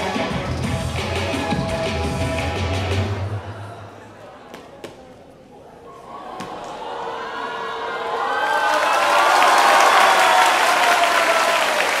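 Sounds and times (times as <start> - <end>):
audience applauding and cheering: 7.7 - 12.0.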